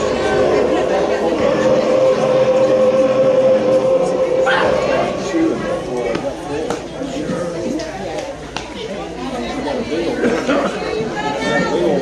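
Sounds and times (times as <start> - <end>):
voice holding long note: 0.0 - 6.7
indistinct spectator voices: 0.0 - 8.3.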